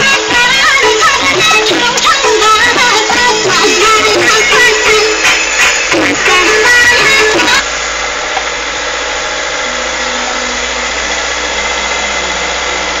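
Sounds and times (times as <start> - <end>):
music: 0.0 - 7.6
road noise: 0.0 - 13.0
vehicle engine hum: 0.0 - 13.0.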